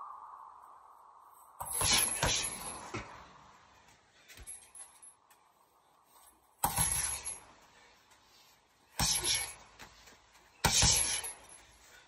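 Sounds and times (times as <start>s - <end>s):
punches hitting heavy bag: 9.0s - 9.6s, 10.6s - 11.4s.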